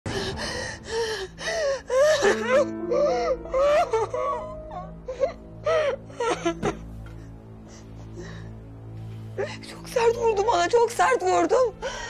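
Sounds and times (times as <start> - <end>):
woman sobbing: 0.3 - 7.0.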